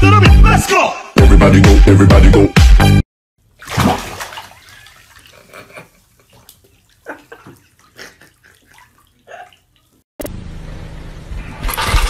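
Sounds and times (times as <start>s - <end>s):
water splashing in bathtub: 3.4s - 10.1s.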